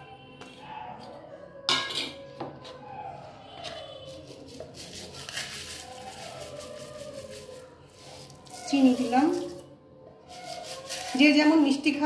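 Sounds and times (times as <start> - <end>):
dishes clinking against metal bowl: 1.7 - 2.8.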